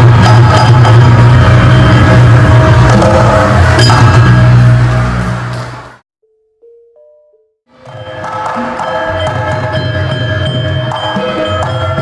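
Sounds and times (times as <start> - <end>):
struck metallophone notes: 6.2 - 12.0.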